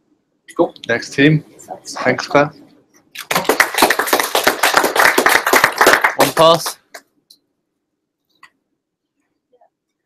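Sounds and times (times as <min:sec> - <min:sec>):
people applauding: 0:03.2 - 0:07.0.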